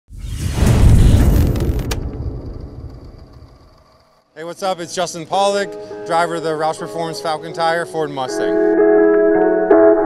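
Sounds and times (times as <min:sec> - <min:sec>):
low rumbling boom: 0:00.1 - 0:04.0.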